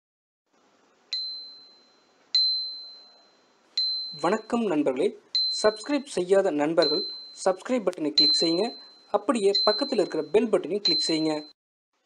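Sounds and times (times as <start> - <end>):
bell ding: 1.1 - 4.5, 6.8 - 7.5, 8.1 - 9.0.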